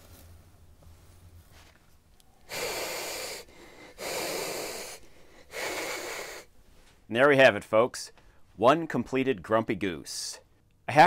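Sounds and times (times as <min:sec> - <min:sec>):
goose hissing: 0:02.4 - 0:06.6.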